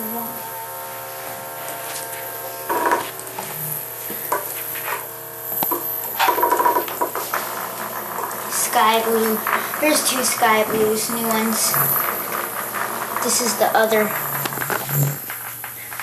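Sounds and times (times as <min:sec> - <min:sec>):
vibrating toy bugs buzzing: 0:00.0 - 0:15.7
toy bugs rattling on tile: 0:05.6 - 0:15.8.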